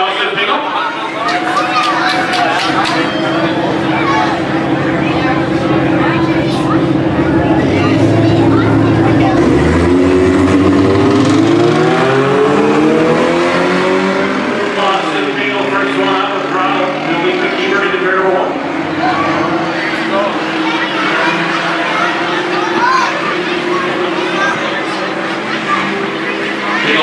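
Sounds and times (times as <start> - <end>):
crowd chatter: 0.0 - 27.0
race car engines revving: 0.0 - 27.0
race cars accelerating away: 0.0 - 27.0.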